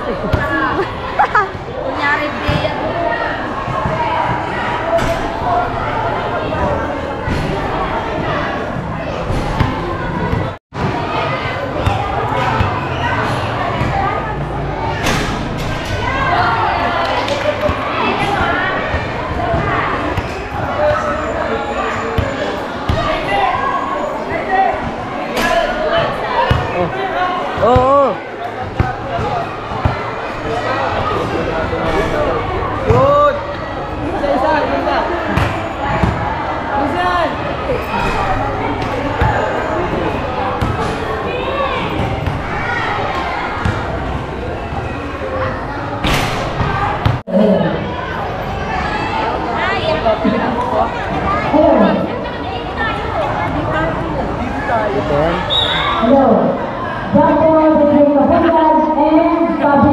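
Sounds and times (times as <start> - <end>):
people chattering: 0.0 - 59.9.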